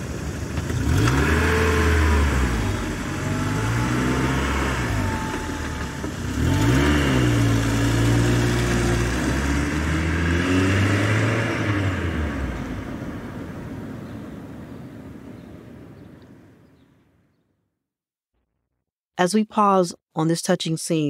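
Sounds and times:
car engine accelerating: 0:00.0 - 0:14.7.

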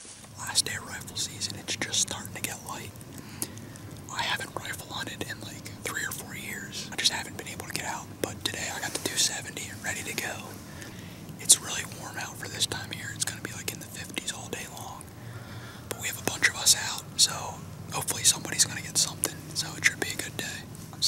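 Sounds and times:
young man whispering: 0:00.3 - 0:15.2, 0:15.8 - 0:21.0.

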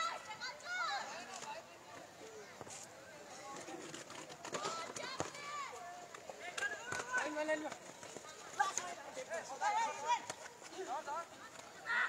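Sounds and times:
people shouting outdoors: 0:00.0 - 0:01.3, 0:08.4 - 0:12.0.

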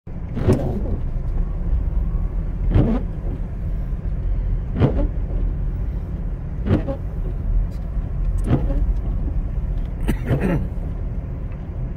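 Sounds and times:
windshield wipers sweeping: 0:00.1 - 0:11.8
car engine and tyres rumbling: 0:00.1 - 0:11.9.

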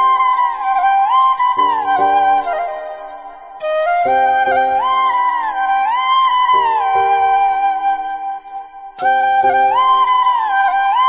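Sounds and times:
bamboo flute melody: 0:00.0 - 0:11.0.

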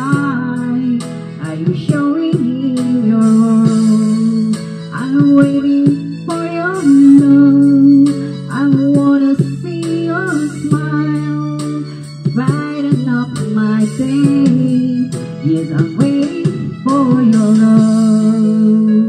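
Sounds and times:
karaoke backing track with guitar: 0:00.0 - 0:19.0
woman singing into microphone: 0:00.0 - 0:19.0.

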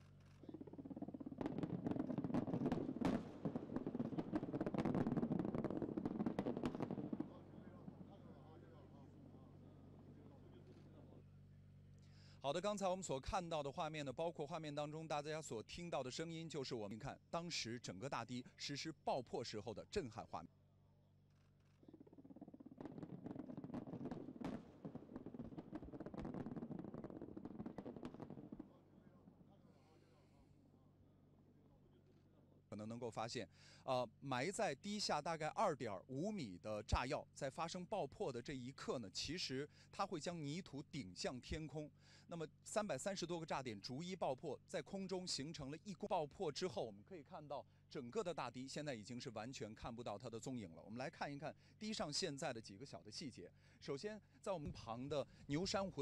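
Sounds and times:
rapid explosive cracks: 0:00.6 - 0:08.0, 0:22.0 - 0:28.8.

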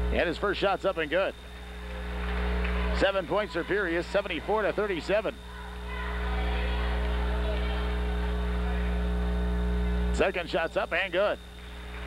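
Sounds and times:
electrical mains hum: 0:00.0 - 0:12.0
faint murmur of voices: 0:01.5 - 0:10.2.

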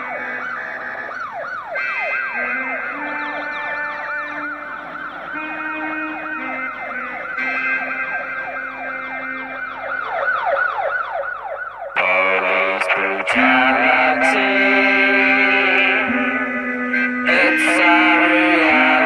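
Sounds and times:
synthesizer chords: 0:00.0 - 0:11.4, 0:12.0 - 0:19.0
siren-style wail: 0:00.0 - 0:19.0.

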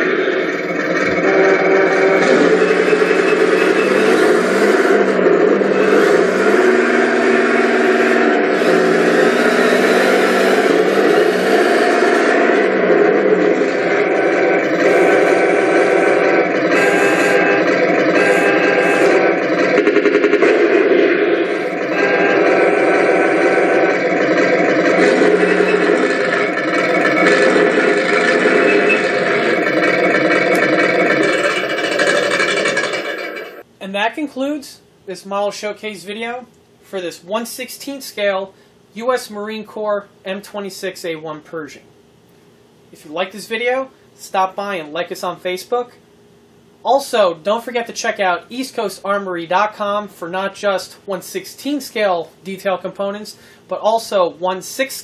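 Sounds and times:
simulated tank engine from speaker: 0:00.0 - 0:33.6.

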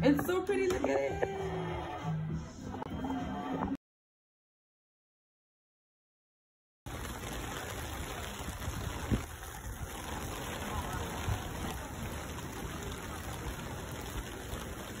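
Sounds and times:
rain on wet pavement: 0:06.9 - 0:15.0.

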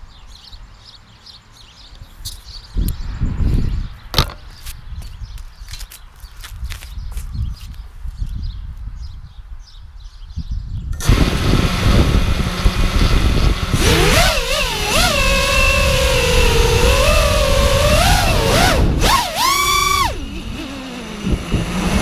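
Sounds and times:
wind rumble on microphone: 0:01.9 - 0:22.0
quadcopter motors whining: 0:11.0 - 0:22.0.

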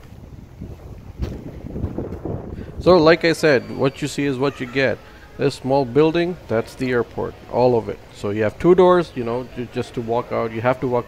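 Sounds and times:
wind buffeting microphone: 0:00.0 - 0:04.4.

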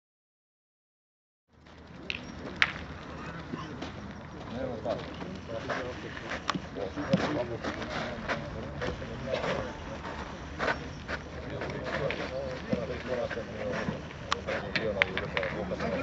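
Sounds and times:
men talking indistinctly: 0:02.0 - 0:16.0.

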